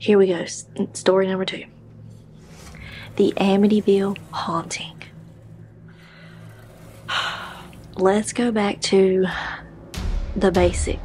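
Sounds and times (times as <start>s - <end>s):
low steady hum: 0.0s - 11.0s
faint hiss: 2.4s - 8.8s.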